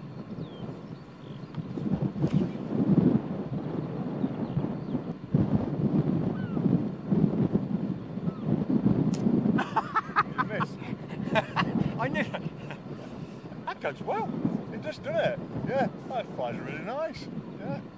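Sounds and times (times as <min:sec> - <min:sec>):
wind buffeting microphone: 0:00.0 - 0:17.9.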